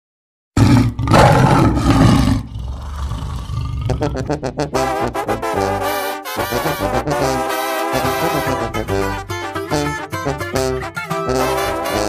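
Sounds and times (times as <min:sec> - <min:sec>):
loud rough roar: 0:00.6 - 0:04.3.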